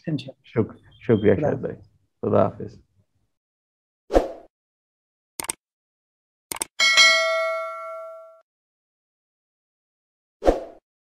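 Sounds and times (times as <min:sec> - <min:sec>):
bell ding: 0:06.8 - 0:08.4.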